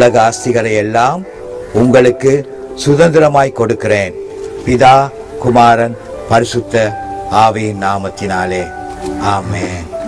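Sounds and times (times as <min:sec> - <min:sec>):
man's voice over sound system: 0:00.0 - 0:10.0.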